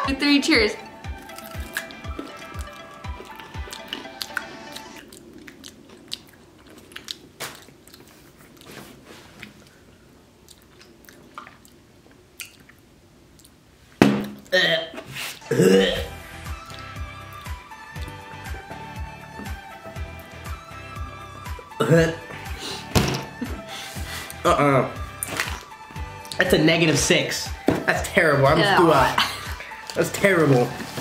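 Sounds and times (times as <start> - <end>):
soft background music: 0.0 - 5.6, 15.4 - 31.0
chewing crunchy snack: 1.2 - 13.6.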